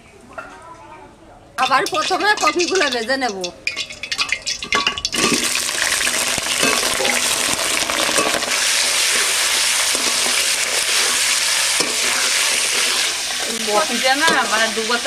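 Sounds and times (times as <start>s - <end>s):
vegetables sizzling in oil: 1.6s - 15.0s
spatula scraping pan: 8.1s - 15.0s.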